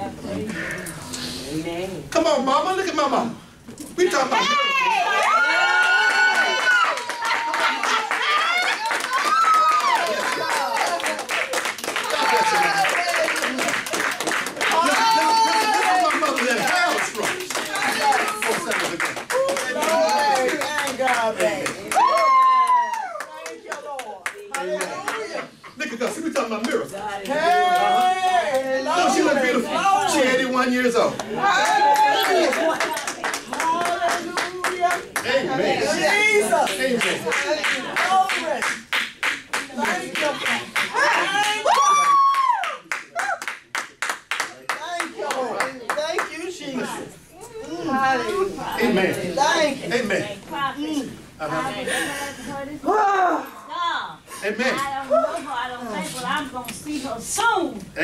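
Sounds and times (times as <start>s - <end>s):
congregation clapping: 5.2s - 25.4s, 31.2s - 35.4s, 36.1s - 46.6s
handclaps: 6.3s - 25.2s, 36.7s - 46.3s.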